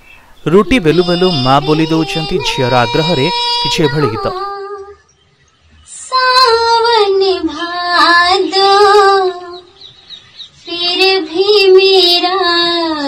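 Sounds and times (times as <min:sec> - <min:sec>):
woman singing slow song: 0:01.0 - 0:05.1, 0:05.8 - 0:09.9, 0:10.6 - 0:13.0.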